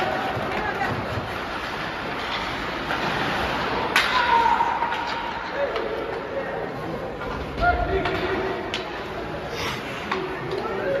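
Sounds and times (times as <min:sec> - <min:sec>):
sharp crack of hockey play: 0:00.0 - 0:06.3.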